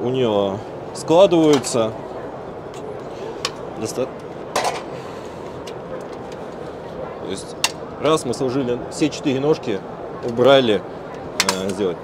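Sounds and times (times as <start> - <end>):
crowd chatter: 0.0 - 12.0
metal stand legs clicking and knocking: 11.4 - 11.8.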